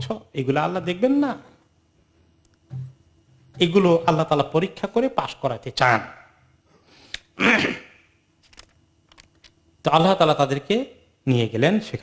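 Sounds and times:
man speaking: 0.0s - 1.6s, 3.6s - 6.3s.

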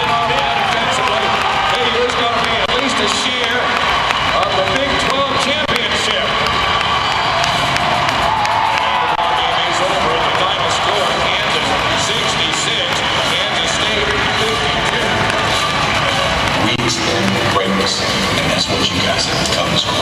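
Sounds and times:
crowd voices: 0.0s - 20.0s
music over loudspeakers: 0.0s - 20.0s.

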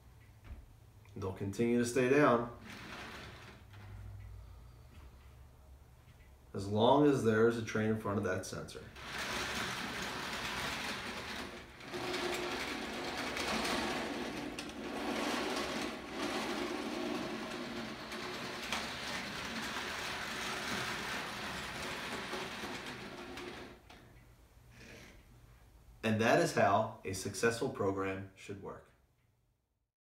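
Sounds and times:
toy train whirring and rattling: 9.0s - 23.8s.

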